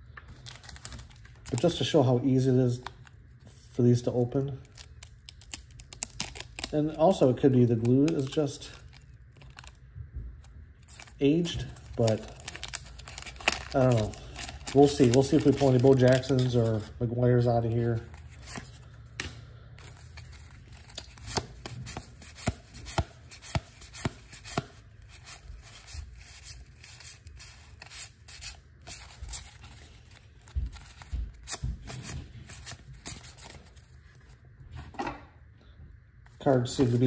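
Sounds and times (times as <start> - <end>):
cards flipped through by hand: 10.8 - 16.9, 17.7 - 34.4.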